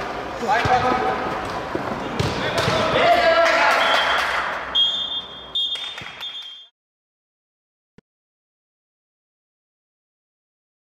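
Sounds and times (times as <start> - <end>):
echoing indoor sports hall noise: 0.0 - 6.7
referee's whistle blasts: 3.7 - 6.7.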